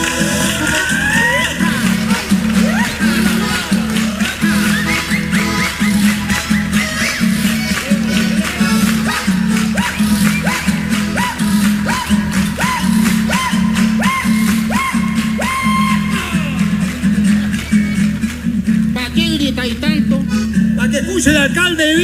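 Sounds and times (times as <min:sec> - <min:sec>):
button accordion: 0:00.0 - 0:15.9
acoustic guitar: 0:00.0 - 0:22.0.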